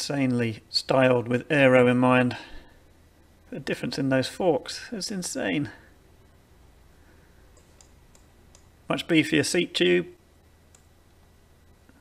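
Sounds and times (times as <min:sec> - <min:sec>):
man speaking: 0:00.0 - 0:02.6, 0:03.5 - 0:05.9, 0:08.9 - 0:10.2
faint clicks: 0:07.5 - 0:08.7, 0:10.7 - 0:10.9.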